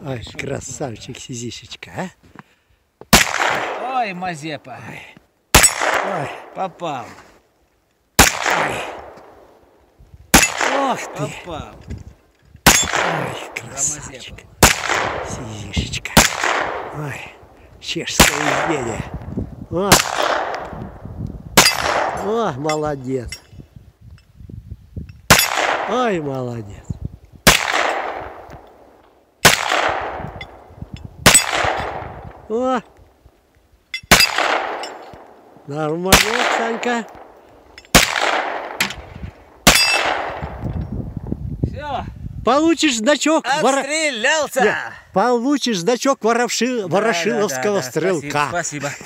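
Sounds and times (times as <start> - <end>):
pistol shot with echo: 3.1 - 3.9, 5.5 - 6.5, 8.2 - 9.4, 10.3 - 11.2, 12.7 - 13.6, 14.6 - 15.3, 16.2 - 17.0, 18.2 - 18.8, 19.9 - 20.7, 21.6 - 22.3, 25.3 - 26.0, 27.4 - 28.8, 29.4 - 32.2, 34.1 - 35.4, 36.1 - 40.6
bullets hitting steel plates: 31.3 - 31.9, 34.0 - 35.2, 39.7 - 40.2.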